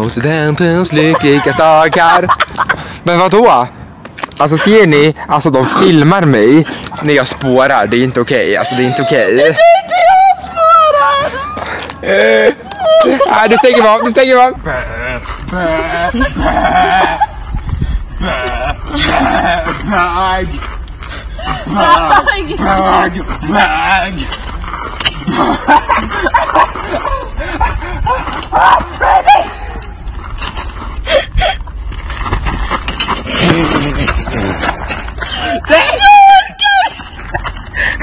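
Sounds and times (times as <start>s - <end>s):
rough rustling and scuffling: 0.0s - 38.0s
people laughing: 0.6s - 2.9s, 6.5s - 17.6s, 18.2s - 20.1s, 21.4s - 24.4s, 25.1s - 28.4s, 33.3s - 38.0s.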